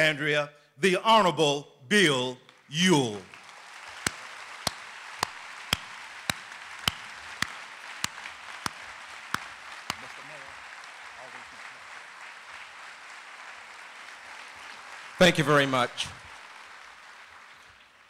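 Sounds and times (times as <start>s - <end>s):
sharp claps nearby: 2.4s - 18.0s
audience applauding: 2.5s - 18.0s.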